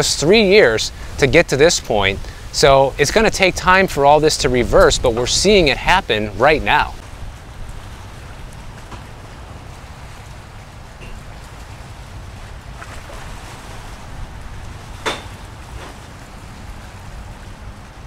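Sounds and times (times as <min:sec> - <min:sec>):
wind on microphone: 0:00.0 - 0:18.0.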